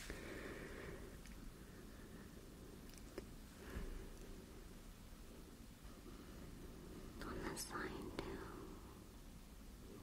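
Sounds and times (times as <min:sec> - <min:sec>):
low steady hiss: 0:00.0 - 0:10.0
person whispering: 0:07.1 - 0:08.9.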